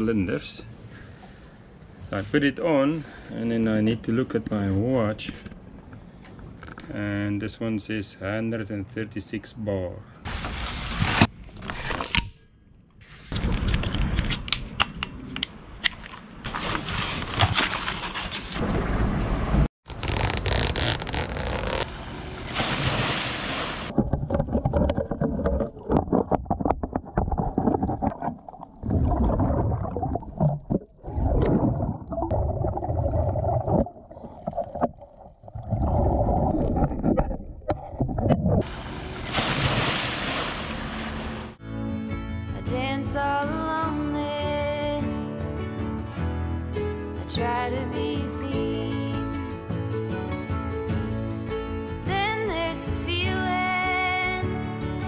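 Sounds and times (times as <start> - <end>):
underwater bubbles gurgling: 23.9 - 39.2.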